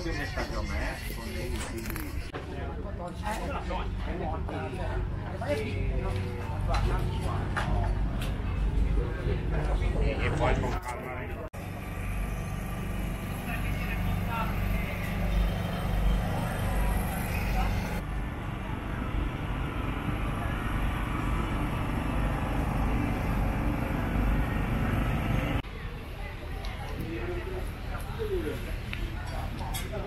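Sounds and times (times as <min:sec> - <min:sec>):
faint voices: 0:00.0 - 0:11.5, 0:13.2 - 0:30.0.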